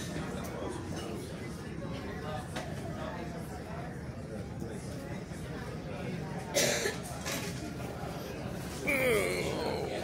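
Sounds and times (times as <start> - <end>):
person coughing: 6.6 - 7.0.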